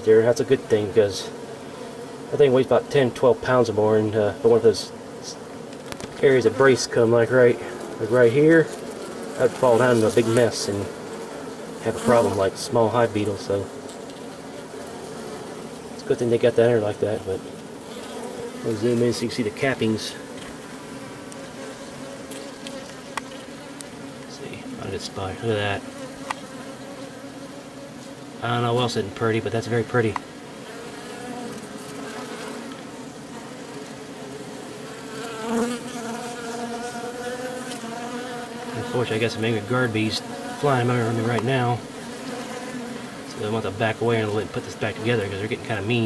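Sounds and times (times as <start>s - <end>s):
honeybees humming: 0.0s - 46.0s.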